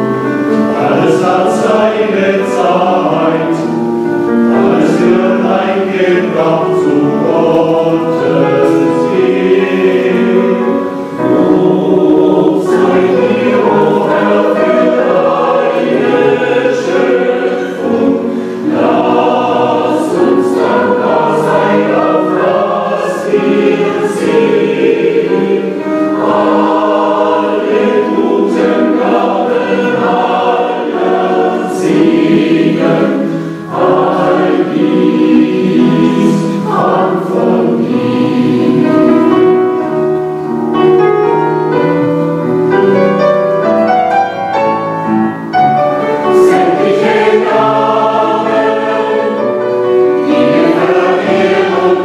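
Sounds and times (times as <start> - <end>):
adult and children's choirs singing: 0.0 - 42.5, 43.6 - 52.0
singers breathing: 18.2 - 18.8, 33.2 - 33.7.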